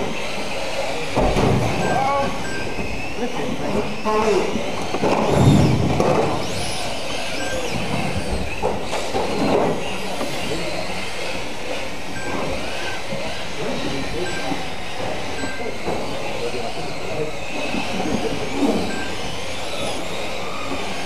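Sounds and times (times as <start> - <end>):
small electric motors whining: 0.0 - 21.0.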